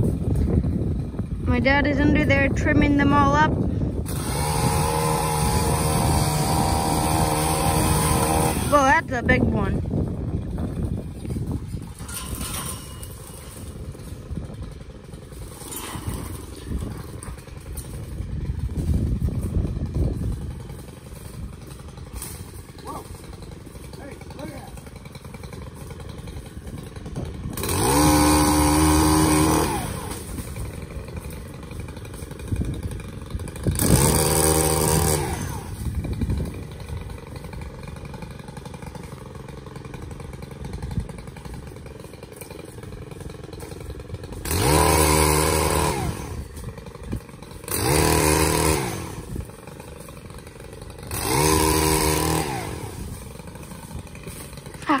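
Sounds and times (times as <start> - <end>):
powered pole saw cutting branches: 0.0 - 55.0.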